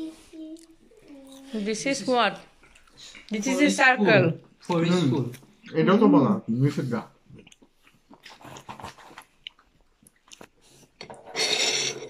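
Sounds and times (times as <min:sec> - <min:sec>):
chewing: 0:02.4 - 0:03.4, 0:07.2 - 0:11.0.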